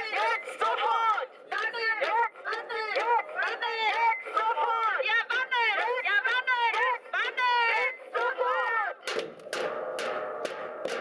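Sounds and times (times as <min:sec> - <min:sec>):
drum-led music: 0:01.6 - 0:11.0.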